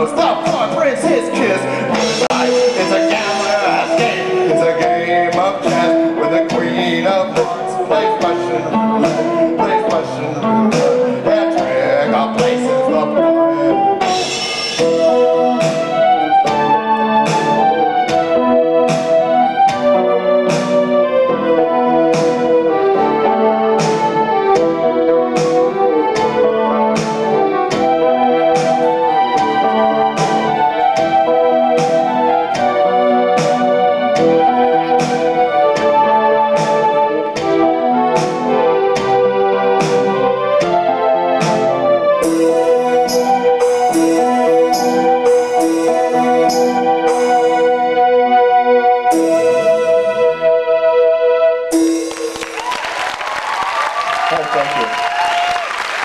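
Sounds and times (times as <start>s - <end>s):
stringed instrument melody: 0.0s - 52.7s
electric keyboard melody: 0.0s - 56.0s.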